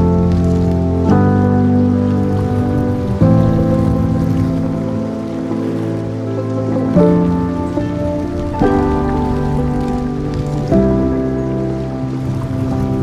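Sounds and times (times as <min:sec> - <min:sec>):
calm music with sustained chords: 0:00.0 - 0:13.0.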